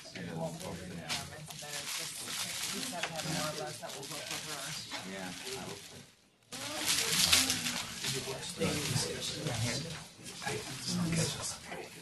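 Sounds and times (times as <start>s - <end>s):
indistinct conversation: 0.0s - 12.0s.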